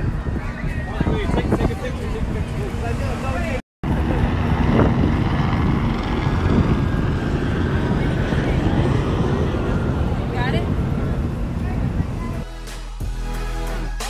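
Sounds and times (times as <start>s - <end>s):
faint voices: 0.0s - 12.5s
wind buffeting microphone: 0.0s - 12.5s.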